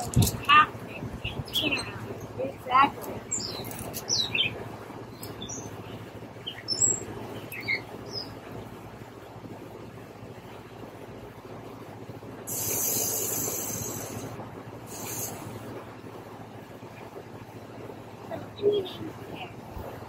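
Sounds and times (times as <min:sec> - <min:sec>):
small birds chirping: 0:00.0 - 0:08.4
low background rumble: 0:00.0 - 0:20.0
loud high hiss: 0:12.4 - 0:15.8.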